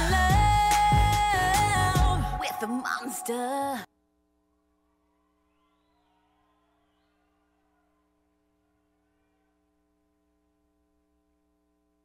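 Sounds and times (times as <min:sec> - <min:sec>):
faint steady hum: 0:07.2 - 0:12.0.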